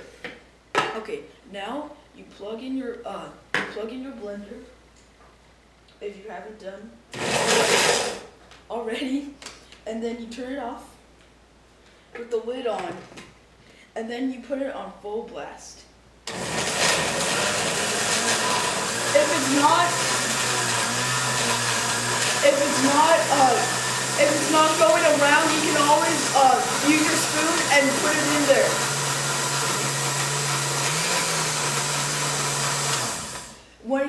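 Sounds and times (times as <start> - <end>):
blender running: 7.2 - 8.3, 16.3 - 33.6.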